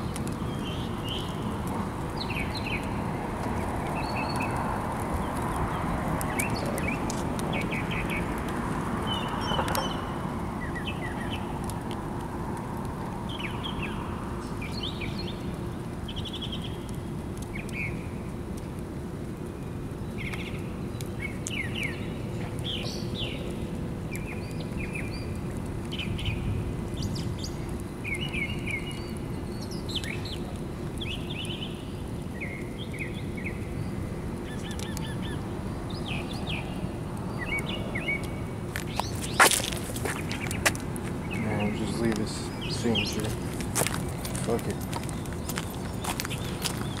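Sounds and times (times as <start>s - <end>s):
birds chirping: 2.1s - 8.4s, 9.0s - 11.5s, 20.1s - 47.0s.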